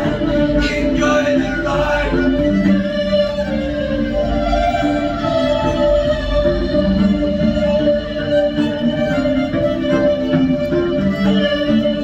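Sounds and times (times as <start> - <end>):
fiddle playing folk tune: 0.0 - 12.0
man's wordless vocals: 0.5 - 2.4.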